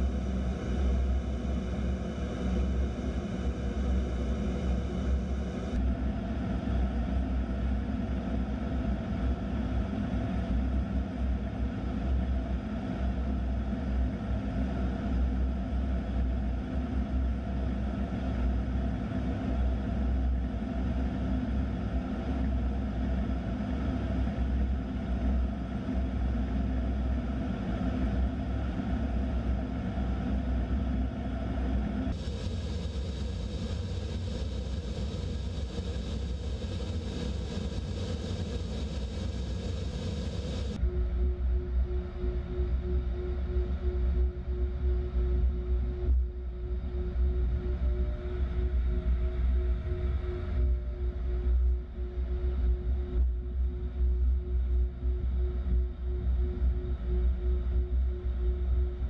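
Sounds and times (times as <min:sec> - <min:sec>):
jet engines droning in cockpit: 0:00.0 - 0:59.0
airflow over canopy: 0:30.9 - 0:41.0.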